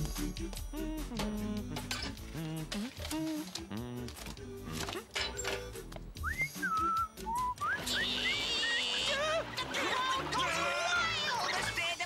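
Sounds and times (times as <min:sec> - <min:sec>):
light background music: 0:00.0 - 0:12.0
whistled tune: 0:06.2 - 0:09.1.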